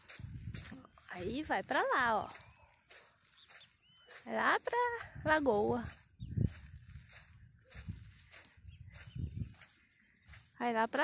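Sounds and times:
soft footsteps on sand: 0.0s - 11.0s.

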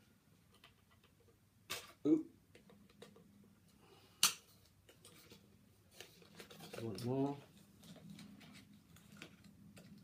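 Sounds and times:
faint clicks and rustles: 4.4s - 10.0s.

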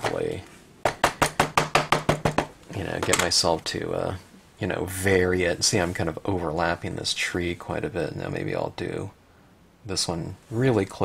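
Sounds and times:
rubber stamp tapping ink pad: 0.8s - 2.6s.

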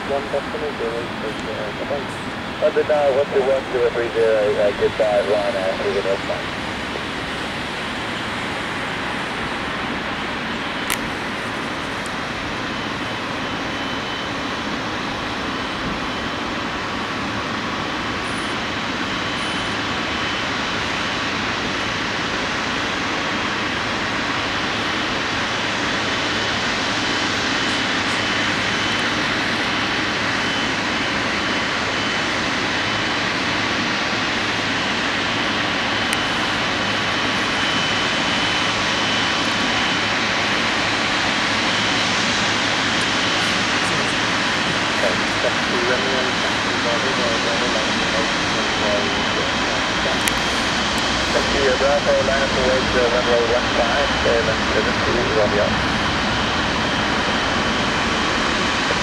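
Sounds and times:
high whine of jet engine: 0.0s - 59.0s
jet engines idling: 0.0s - 59.0s.

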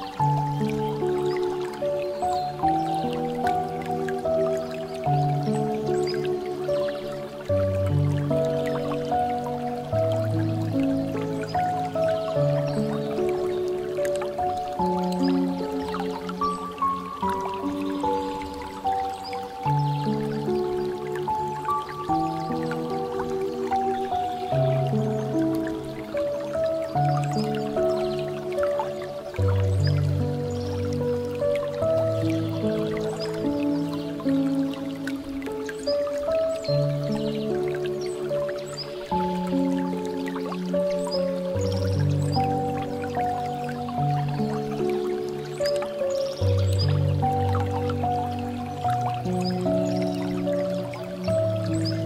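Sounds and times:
piano melody: 0.0s - 52.0s
water dripping and trickling: 0.0s - 52.0s.

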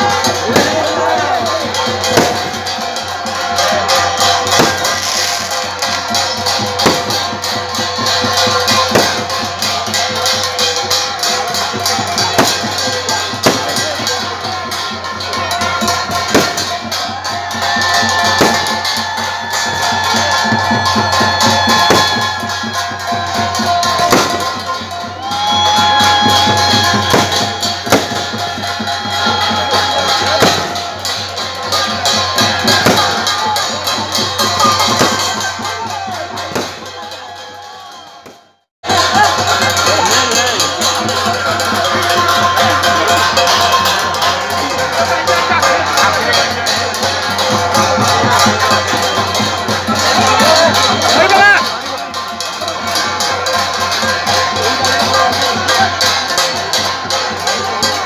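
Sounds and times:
crowd: 0.0s - 58.0s
drums and jingling percussion: 0.0s - 58.0s.

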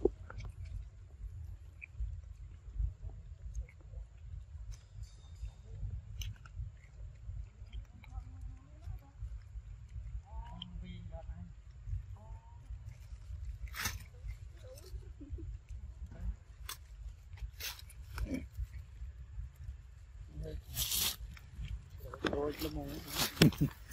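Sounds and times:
steady low rumble: 0.0s - 23.9s.

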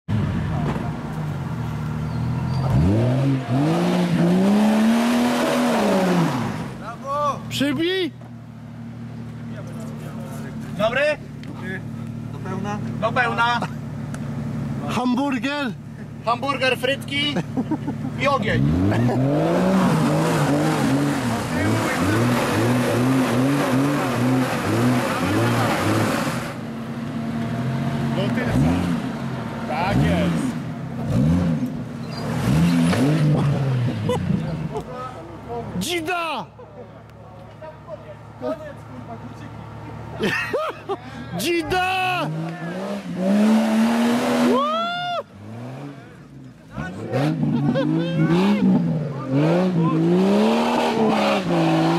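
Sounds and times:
engine revving under load: 2.2s - 6.9s, 17.5s - 34.9s, 42.0s - 51.9s.

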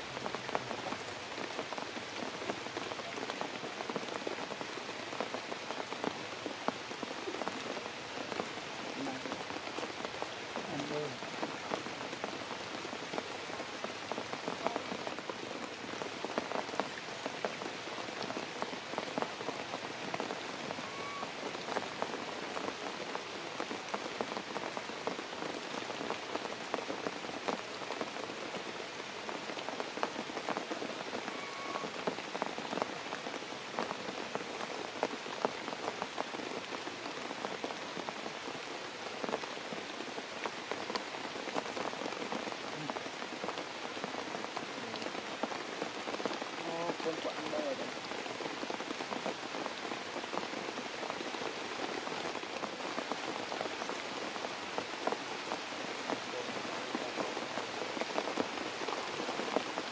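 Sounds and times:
rain falling on leaves: 0.0s - 59.9s.

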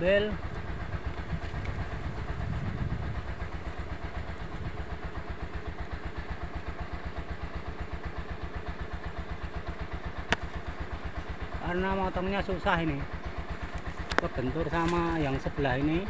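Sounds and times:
motorcycle engine idling: 0.0s - 16.0s.

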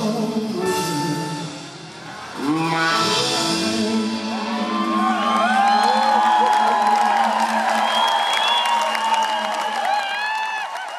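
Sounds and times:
crowd cheering and clapping: 4.2s - 10.9s.

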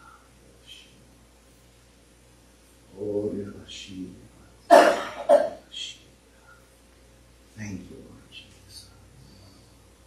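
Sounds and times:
person coughing: 4.7s - 5.6s.

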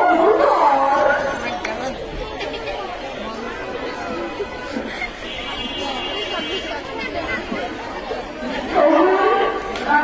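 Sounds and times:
girls chattering: 0.2s - 9.7s.

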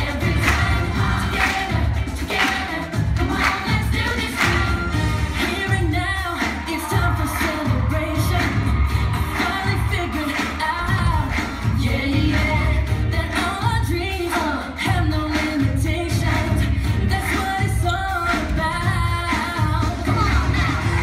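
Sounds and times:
pop song with singing: 0.0s - 21.0s.

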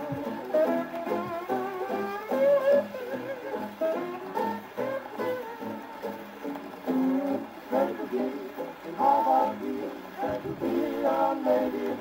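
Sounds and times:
plucked string band on old record: 0.0s - 12.0s
person singing: 6.9s - 12.0s.

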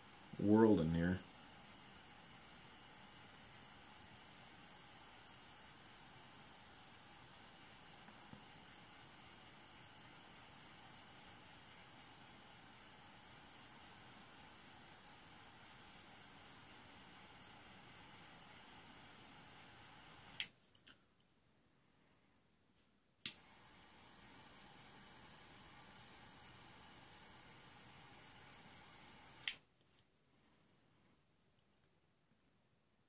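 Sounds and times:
lighter hissing: 0.0s - 20.6s, 23.2s - 29.7s.

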